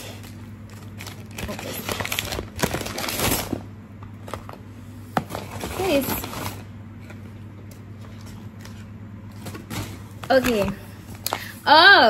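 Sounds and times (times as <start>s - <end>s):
paper mailer rustling: 5.2s - 6.6s.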